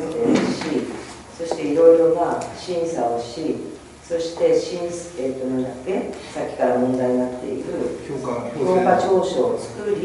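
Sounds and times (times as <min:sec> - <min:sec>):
person speaking: 0:00.0 - 0:10.0.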